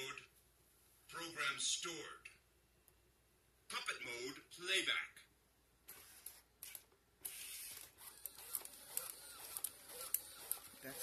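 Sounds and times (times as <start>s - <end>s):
robot gear motors whirring: 5.9s - 11.0s.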